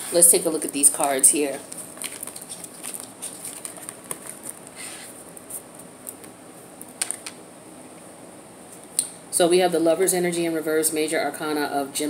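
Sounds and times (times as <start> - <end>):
card rustle: 0.7 - 6.3.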